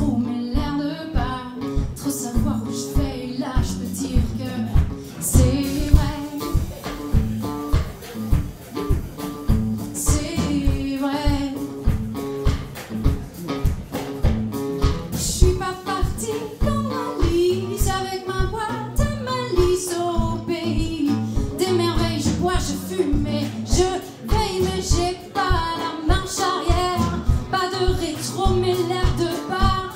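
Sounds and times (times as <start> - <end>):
woman singing: 0.0 - 7.2, 9.7 - 12.0, 15.0 - 29.9
backing band playing soul: 0.0 - 29.9
drums steady beat: 0.0 - 29.9.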